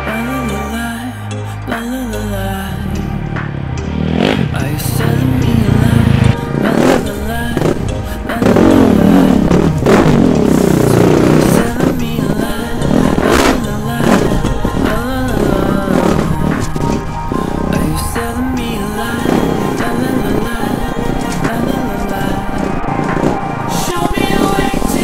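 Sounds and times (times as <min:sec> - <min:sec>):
background music: 0:00.0 - 0:25.0
motorcycle engine revving: 0:02.1 - 0:25.0.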